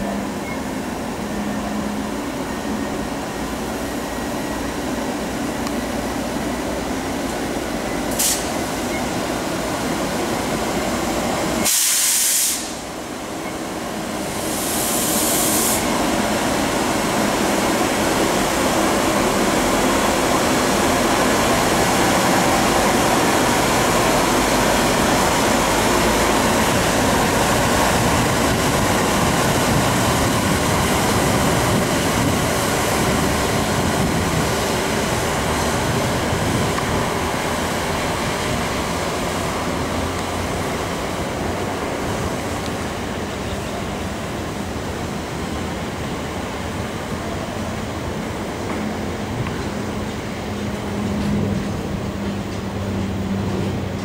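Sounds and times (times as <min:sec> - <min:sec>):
electric locomotive running: 0:00.0 - 0:11.7, 0:12.6 - 0:54.0
air hiss burst: 0:08.1 - 0:08.7, 0:11.6 - 0:12.9, 0:14.3 - 0:16.0.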